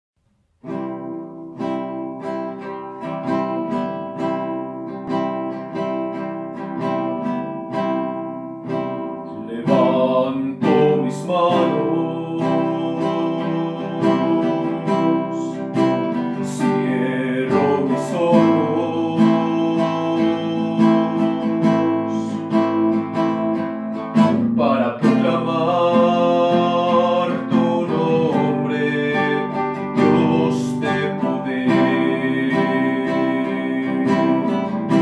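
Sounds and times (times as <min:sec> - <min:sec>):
acoustic guitar strumming: 0:00.4 - 0:35.0.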